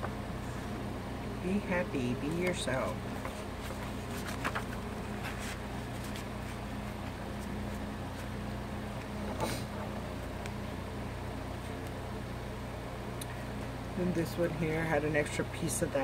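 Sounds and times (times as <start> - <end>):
steady low hum: 0.0 - 16.0
paper pages rustling: 2.3 - 8.4.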